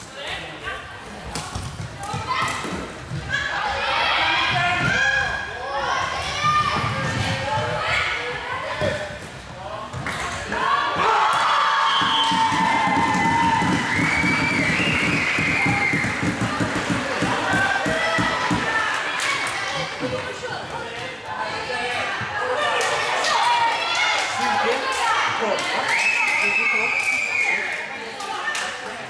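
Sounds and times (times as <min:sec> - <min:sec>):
crowd cheering: 0:10.4 - 0:20.4, 0:21.7 - 0:29.0.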